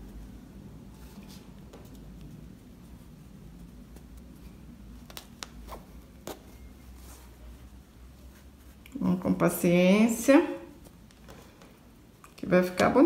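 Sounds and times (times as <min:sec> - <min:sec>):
fabric rustling: 0:00.0 - 0:12.2
low steady hum: 0:00.0 - 0:13.0.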